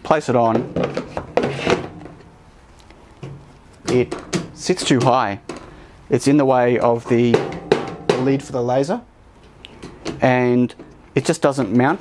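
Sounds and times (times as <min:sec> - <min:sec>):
quiet handling noise: 0:00.3 - 0:12.0
knocks and scrapes: 0:00.4 - 0:02.5, 0:03.2 - 0:05.8.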